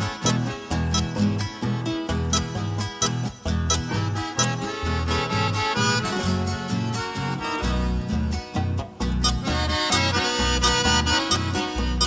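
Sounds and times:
accordion melody: 0.0s - 12.0s
steady bass line: 0.0s - 12.0s
strummed and plucked guitars: 0.0s - 12.0s.

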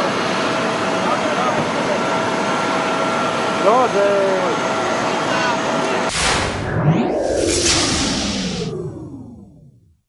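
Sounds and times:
rushing whoosh: 6.1s - 9.9s.

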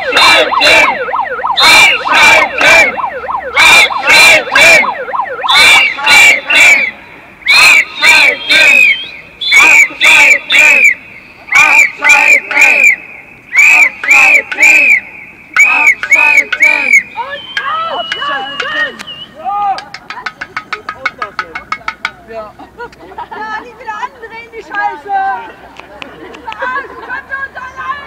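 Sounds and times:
protesters shouting a chant: 0.0s - 20.0s, 24.4s - 25.6s, 26.6s - 28.0s.

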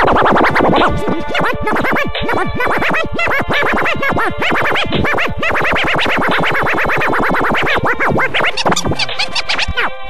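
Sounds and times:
turntable scratching: 0.0s - 10.0s.

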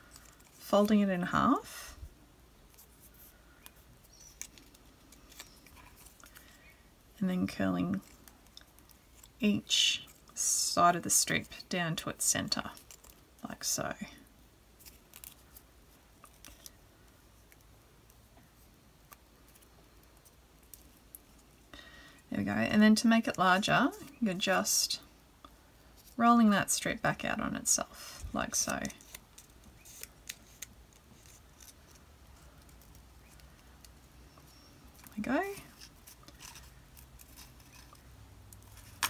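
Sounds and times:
paper strip rustling and clicking: 2.7s - 6.6s, 14.8s - 18.2s, 28.5s - 39.0s.

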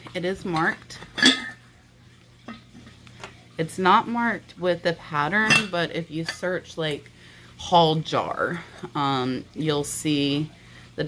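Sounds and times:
ceramic jar clinking: 0.6s - 1.6s, 5.4s - 6.5s.

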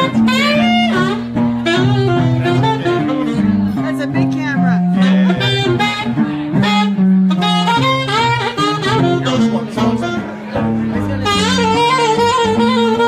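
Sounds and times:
bass line: 0.0s - 13.0s
saxophone melody: 0.0s - 13.0s.

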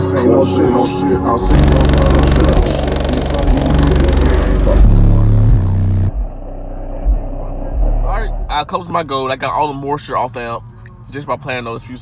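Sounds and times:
deep bass hits: 1.5s - 8.6s.

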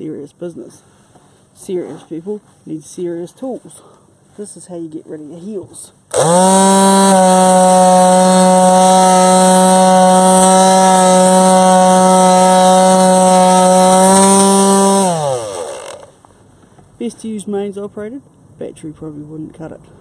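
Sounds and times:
electric sander motor whine: 6.1s - 16.1s.

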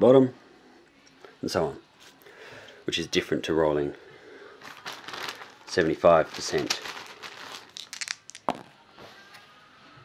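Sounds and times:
dice clicking on paper: 7.6s - 8.7s.

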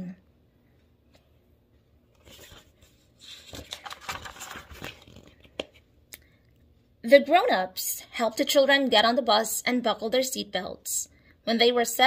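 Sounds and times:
book pages rustling: 2.1s - 5.9s.

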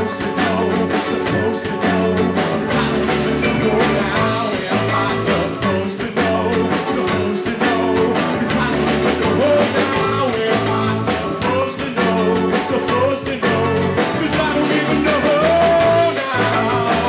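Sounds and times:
band playing folk-rock song: 0.0s - 17.0s.

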